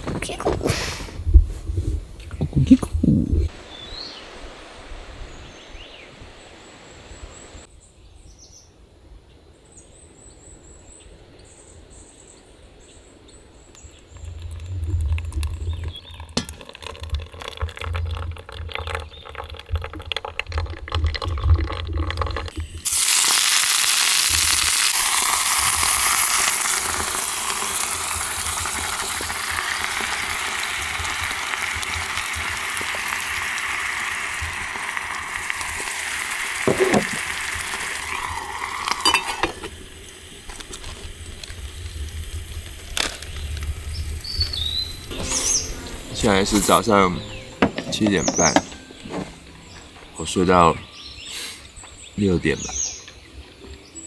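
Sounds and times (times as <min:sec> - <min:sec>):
low rumbles: 0:14.0 - 0:22.8
gas stove hissing: 0:22.8 - 0:49.4.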